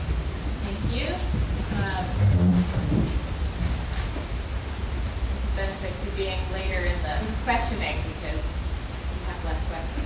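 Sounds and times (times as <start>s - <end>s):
low room noise rumble and hiss: 0.0s - 10.0s
person speaking: 0.6s - 2.8s.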